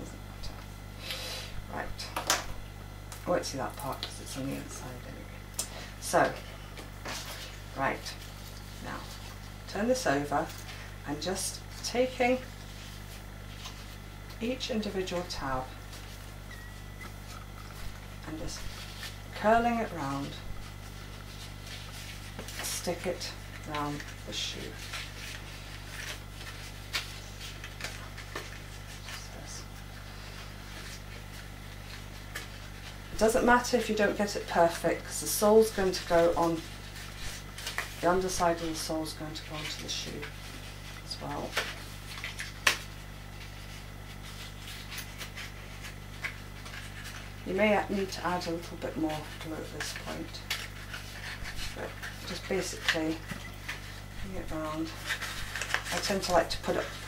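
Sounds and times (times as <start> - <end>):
low electrical hum: 0.0 - 57.0
paper card handled by hand: 11.7 - 14.4, 17.0 - 34.8, 35.6 - 57.0
card rustling: 48.4 - 57.0.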